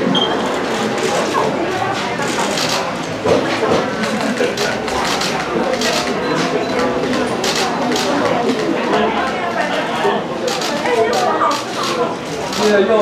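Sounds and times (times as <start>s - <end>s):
people talking indistinctly: 0.0s - 13.0s.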